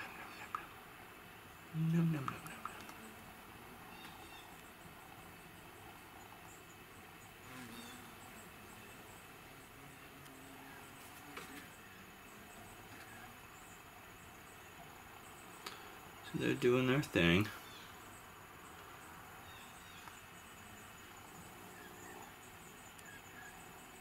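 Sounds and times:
background hiss: 0:00.0 - 0:24.0.

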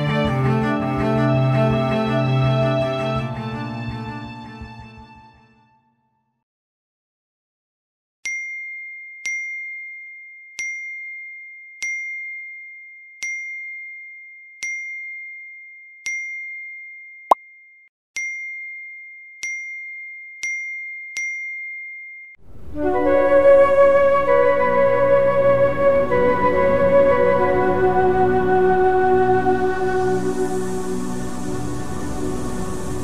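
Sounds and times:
music: 0:00.0 - 0:06.4, 0:22.8 - 0:33.0.

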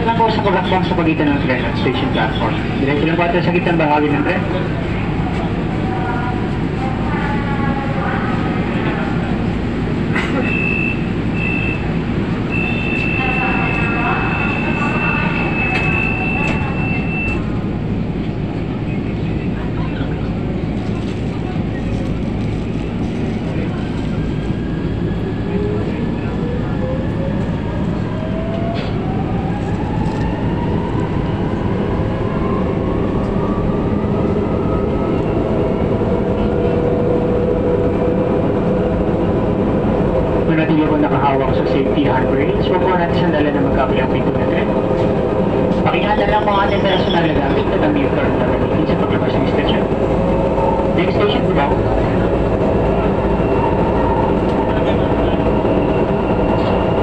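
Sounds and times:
train wheels rumbling on track: 0:00.0 - 0:57.0.

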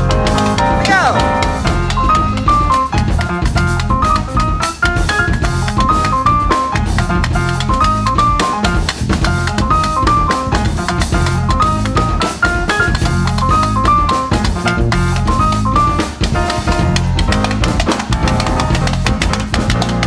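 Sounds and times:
bass guitar: 0:00.0 - 0:20.0
drum kit: 0:00.0 - 0:20.0
grand piano melody: 0:00.0 - 0:20.0
hand percussion: 0:00.0 - 0:20.0.

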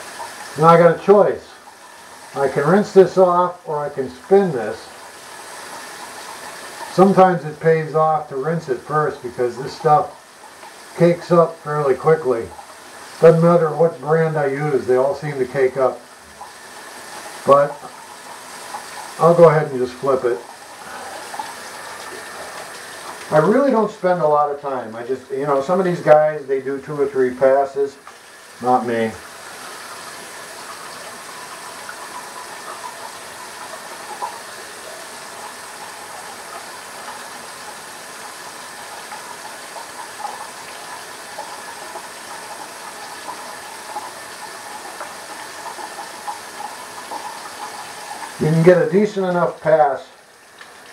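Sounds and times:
steady background hiss: 0:00.0 - 0:50.9
tap water running into sink: 0:00.0 - 0:50.9.

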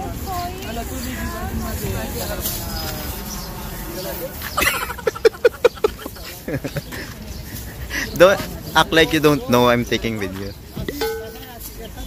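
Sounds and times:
background market voices: 0:00.0 - 0:12.0.

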